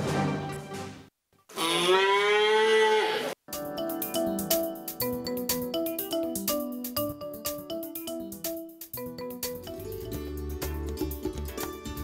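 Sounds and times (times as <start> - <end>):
theme music: 0.0 - 1.1, 3.5 - 12.0
cow mooing: 1.5 - 3.4.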